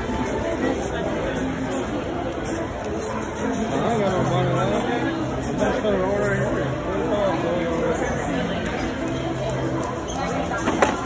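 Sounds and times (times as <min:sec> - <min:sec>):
spray paint can hissing: 0:00.0 - 0:06.5
people chattering: 0:00.0 - 0:11.0.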